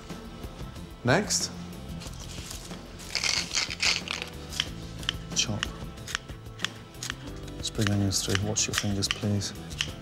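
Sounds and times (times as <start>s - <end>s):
background music: 0.0s - 10.0s
scissors snipping: 3.7s - 10.0s.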